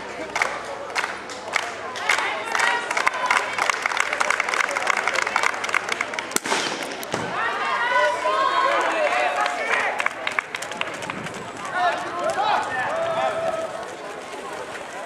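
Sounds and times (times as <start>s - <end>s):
people shouting and cheering: 6.8s - 15.0s.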